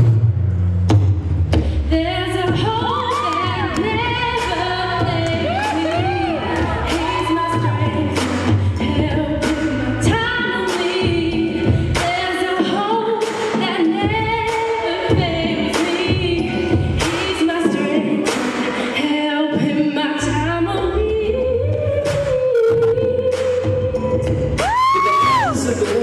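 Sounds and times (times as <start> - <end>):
r and b backing track: 0.0 - 26.0
woman singing into a microphone: 1.9 - 25.6.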